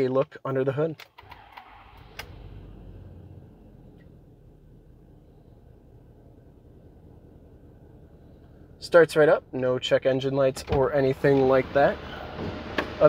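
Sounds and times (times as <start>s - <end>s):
diesel engine starting and idling: 1.2s - 13.0s.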